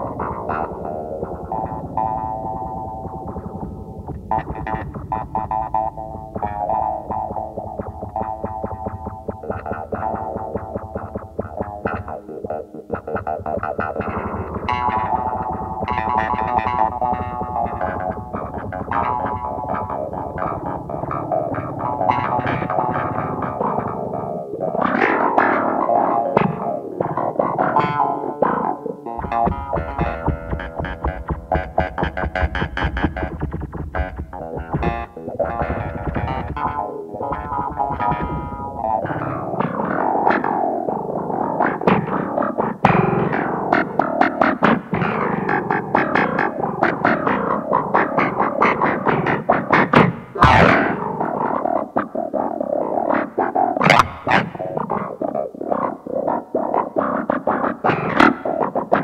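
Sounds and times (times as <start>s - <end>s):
bass line: 0.0s - 44.2s, 50.0s - 51.4s
electric guitar with effects: 0.0s - 59.0s.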